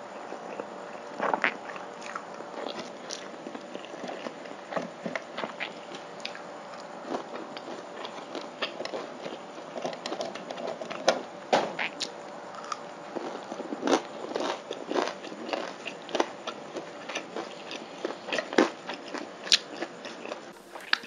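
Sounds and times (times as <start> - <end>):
chewing noodles close up: 0.0 - 10.7, 11.9 - 21.0.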